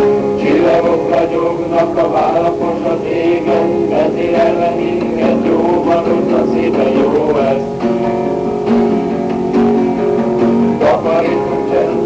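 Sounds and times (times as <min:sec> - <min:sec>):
guitar playing chords: 0:00.0 - 0:12.0
person singing: 0:00.0 - 0:12.0.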